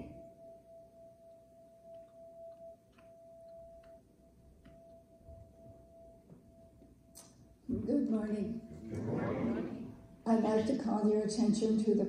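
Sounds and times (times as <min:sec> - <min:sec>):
bell tone ringing: 0:00.0 - 0:07.6.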